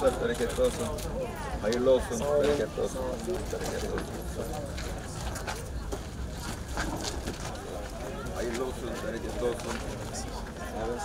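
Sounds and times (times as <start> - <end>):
indistinct crowd voices: 0.0 - 11.0
footsteps: 1.7 - 10.6.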